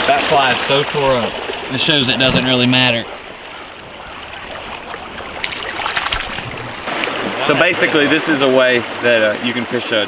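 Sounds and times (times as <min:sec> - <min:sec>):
small water splashes and drips: 0:00.0 - 0:10.0
stream water running: 0:00.0 - 0:10.0.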